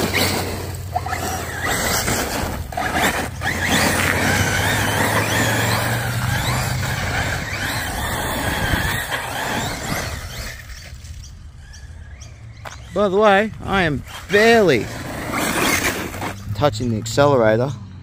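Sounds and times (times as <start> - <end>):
electric motor whine: 0.0 - 11.0
tyres scrabbling on dirt: 0.0 - 11.4, 12.6 - 17.2.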